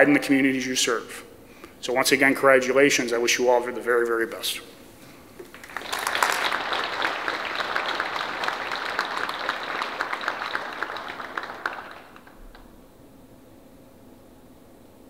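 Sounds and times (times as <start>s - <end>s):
audience applauding: 5.4s - 12.7s.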